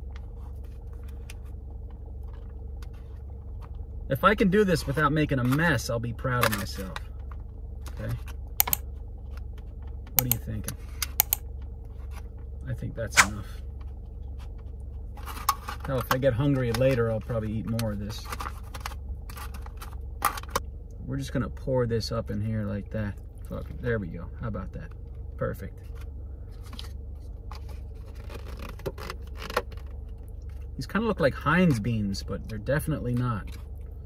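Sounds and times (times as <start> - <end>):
low steady hum: 0.0 - 34.0
sharp click: 8.6 - 8.8, 11.0 - 11.4, 13.2 - 13.4.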